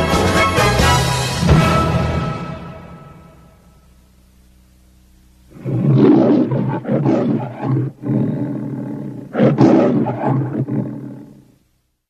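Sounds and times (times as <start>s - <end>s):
lion roaring: 5.5s - 11.5s.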